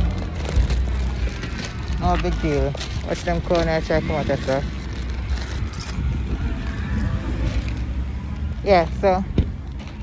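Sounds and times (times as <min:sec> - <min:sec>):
road traffic rumble: 0:00.0 - 0:10.0.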